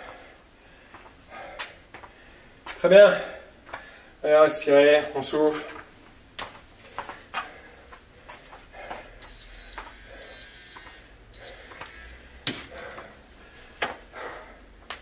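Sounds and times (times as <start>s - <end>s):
man breathing hard: 0.0s - 4.2s, 6.8s - 14.9s.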